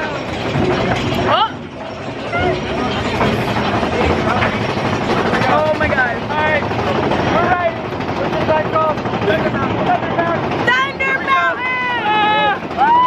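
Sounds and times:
roller coaster rumble: 0:00.0 - 0:13.0
riders yelling and whooping: 0:10.6 - 0:13.0.

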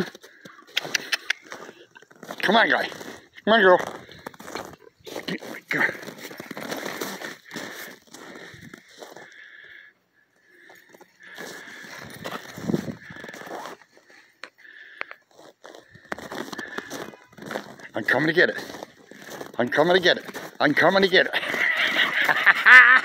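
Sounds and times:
footsteps crunching on snow: 0:00.0 - 0:09.5, 0:10.6 - 0:22.6.

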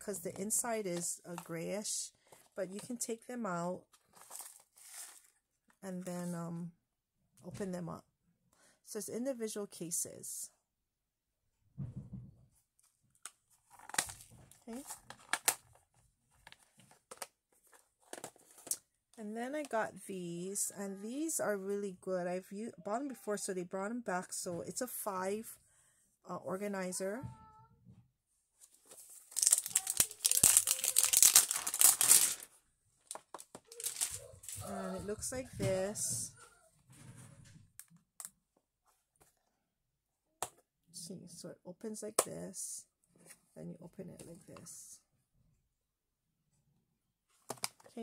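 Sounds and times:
paper tearing and crinkling: 0:28.9 - 0:32.5, 0:33.7 - 0:34.6
plastic cases clicking and knocking: 0:47.4 - 0:48.0.

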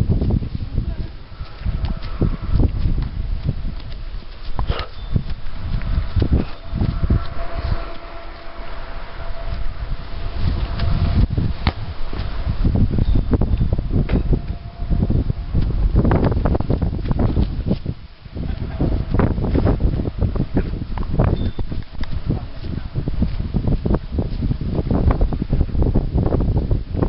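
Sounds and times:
wind buffeting microphone: 0:00.0 - 0:27.0.

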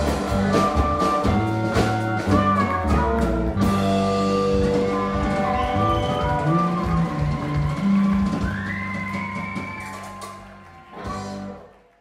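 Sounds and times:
live rock band playing: 0:00.0 - 0:11.9.

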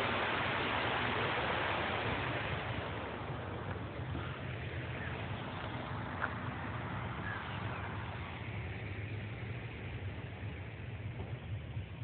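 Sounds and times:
faint outdoor background noise: 0:00.0 - 0:12.0
wind buffeting microphone: 0:00.0 - 0:12.0.

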